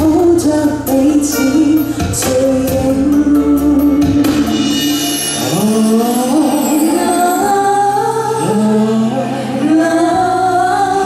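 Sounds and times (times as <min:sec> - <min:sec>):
instrumental accompaniment: 0:00.1 - 0:10.1
voices singing in harmony: 0:04.4 - 0:11.0.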